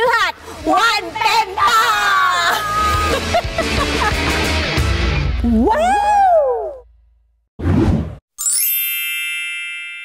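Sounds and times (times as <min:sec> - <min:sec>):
bright shimmering chime: 0:08.4 - 0:10.0.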